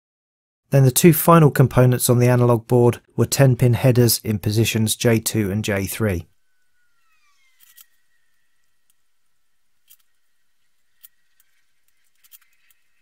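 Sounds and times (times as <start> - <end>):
thin high whine: 6.3 - 13.0.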